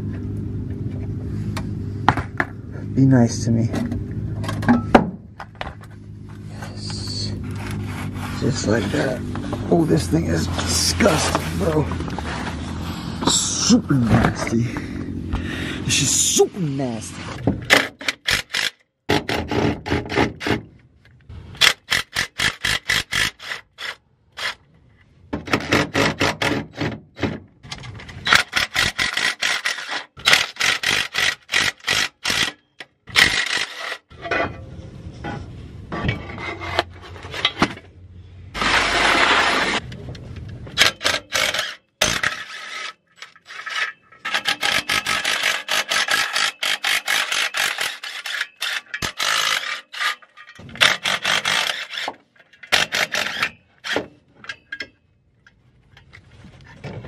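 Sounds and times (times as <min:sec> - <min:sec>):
rasping scrape: 0:05.8 - 0:14.6, 0:28.1 - 0:40.0, 0:40.8 - 0:54.7.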